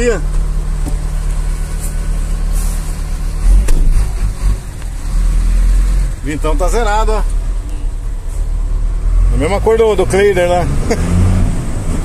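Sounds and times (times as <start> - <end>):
diesel truck engine droning: 0.0 - 12.0.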